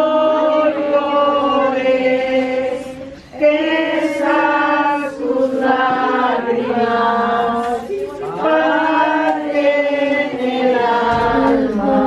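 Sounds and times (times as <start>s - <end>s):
group singing slow devotional song: 0.0s - 12.0s.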